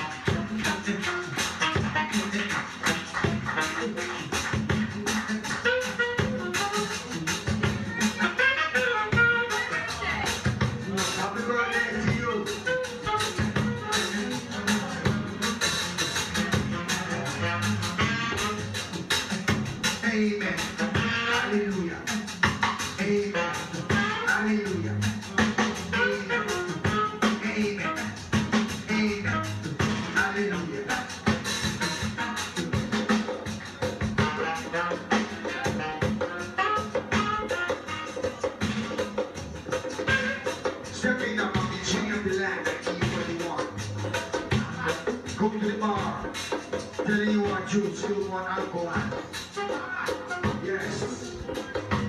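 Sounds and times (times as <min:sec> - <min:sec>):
live ska band playing: 0:00.0 - 0:52.0.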